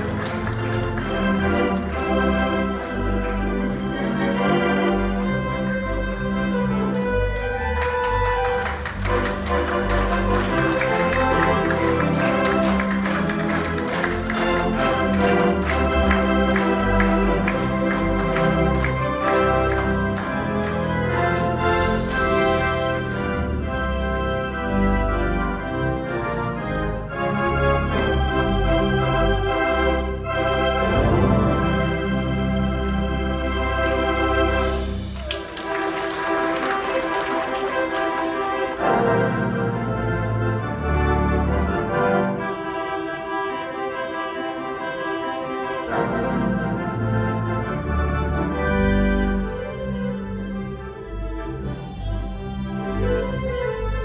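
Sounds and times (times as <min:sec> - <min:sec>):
theatre organ playing: 0:00.0 - 0:54.0.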